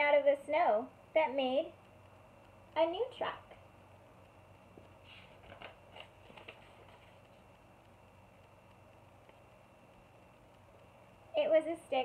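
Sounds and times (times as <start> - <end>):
paper page turning: 5.0 - 7.4.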